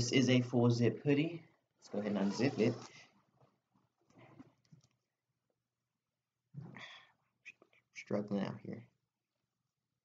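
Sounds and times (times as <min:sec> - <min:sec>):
person speaking: 0:00.0 - 0:03.1.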